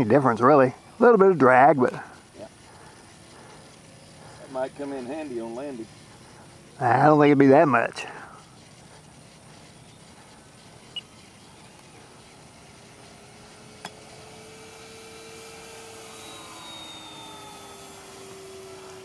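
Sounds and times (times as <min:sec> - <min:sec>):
model plane motor whine: 0:00.0 - 0:19.0.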